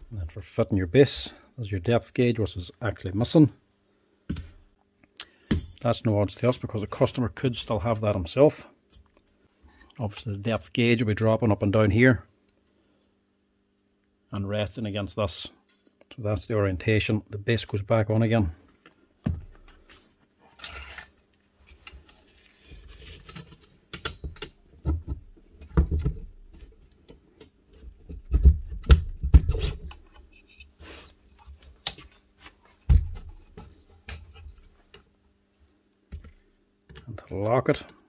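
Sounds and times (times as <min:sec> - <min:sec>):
person speaking: 0:37.0 - 0:38.0.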